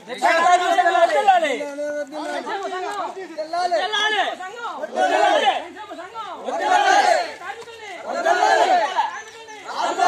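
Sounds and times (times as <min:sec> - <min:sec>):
men shouting slogans together: 0:03.8 - 0:10.0.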